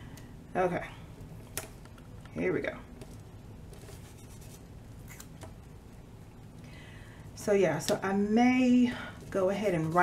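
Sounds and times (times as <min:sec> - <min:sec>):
paper sticker rustling: 0:03.0 - 0:05.5.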